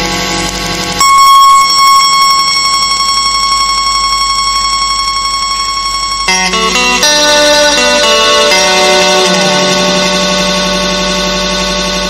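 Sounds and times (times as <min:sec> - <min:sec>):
high electronic buzzing tone: 0:00.0 - 0:12.0
music: 0:00.0 - 0:12.0.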